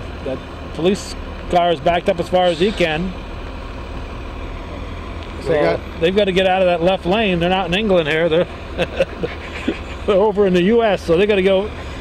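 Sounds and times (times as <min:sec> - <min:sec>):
heavy trucks idling: 0:00.0 - 0:12.0
even hiss: 0:02.3 - 0:03.3.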